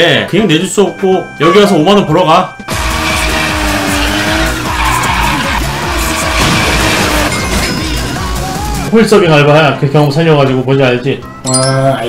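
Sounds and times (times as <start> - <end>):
background music with low beat: 2.5 - 10.2
racing car speeding off: 2.7 - 8.8
tyres skidding: 2.7 - 8.9.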